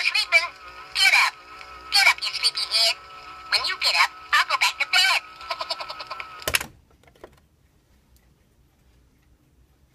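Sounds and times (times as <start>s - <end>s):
recorded voice through small speaker: 0.0s - 6.2s.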